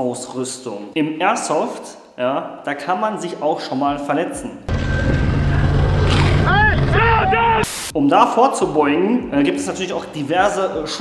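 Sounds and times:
off-road vehicle engine rumble: 4.7 - 7.6
man calling out: 6.4 - 7.7.

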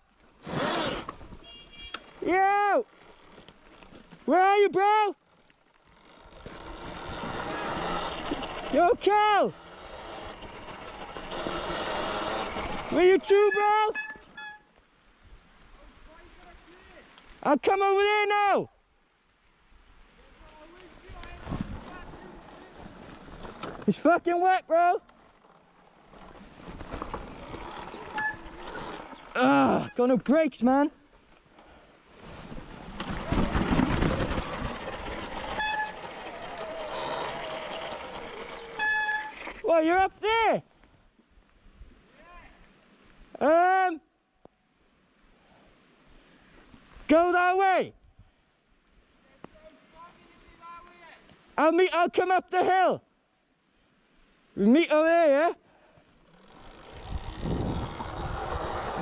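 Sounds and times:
man shouting: 1.4 - 2.9, 4.3 - 5.2, 8.7 - 9.6, 12.9 - 14.0, 17.5 - 18.7, 43.4 - 44.0, 47.1 - 47.9, 51.8 - 53.0
bike knocking and rattling: 5.2 - 13.0, 25.1 - 29.3, 32.9 - 39.7, 56.1 - 59.0
tyres rolling over wet grass: 20.0 - 24.4, 25.0 - 29.5, 31.1 - 39.7, 56.0 - 59.0
rasping rush of noise: 56.3 - 59.0.

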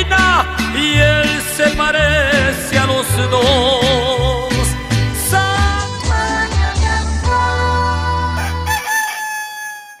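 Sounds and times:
rooster crowing: 8.4 - 10.0.

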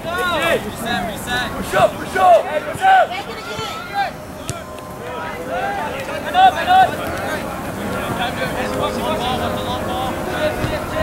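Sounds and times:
players shouting: 0.0 - 11.0
soccer ball kick thud: 4.4 - 4.8, 10.5 - 11.0.

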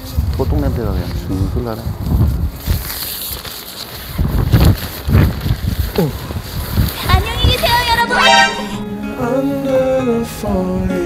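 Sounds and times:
wind buffeting microphone: 0.0 - 8.1.

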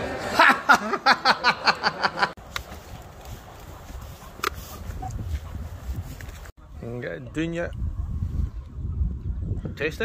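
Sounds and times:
wind rumble on microphone: 2.8 - 10.0.

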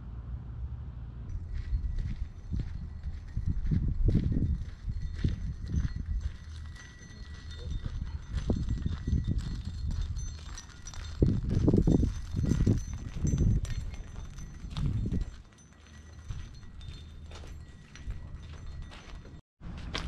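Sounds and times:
low steady rumble: 0.0 - 6.2
footsteps crunching on gravel: 1.4 - 20.0
tie-down straps clinking: 4.4 - 19.4.

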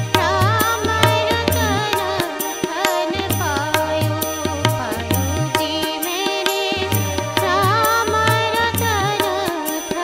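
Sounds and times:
tabla drumming: 0.0 - 10.0
woman singing: 0.0 - 10.0.

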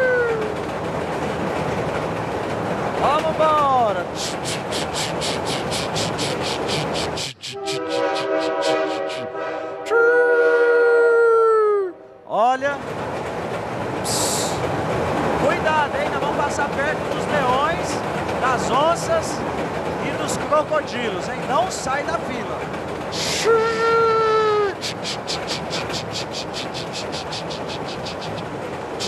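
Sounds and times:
steam locomotive chuffing: 0.0 - 10.0, 12.8 - 29.0
train whistle: 7.2 - 11.1.

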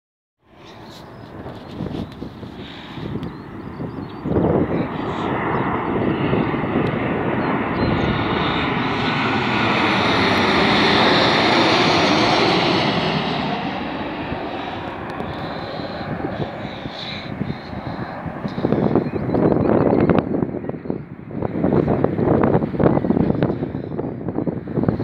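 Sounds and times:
jet airliner flying overhead: 0.4 - 25.0.

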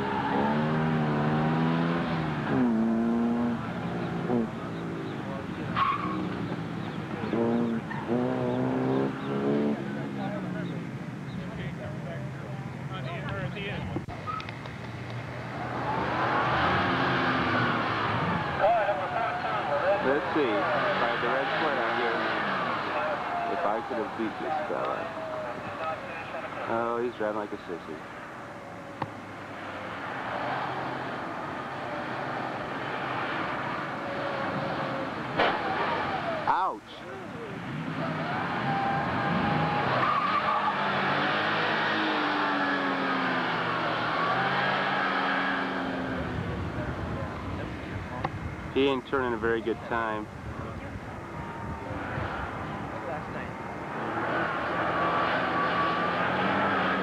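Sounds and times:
car engine revving: 0.0 - 12.2, 14.3 - 28.0, 28.8 - 48.9, 51.3 - 57.0
tyres squealing: 5.7 - 6.5, 38.1 - 43.4.

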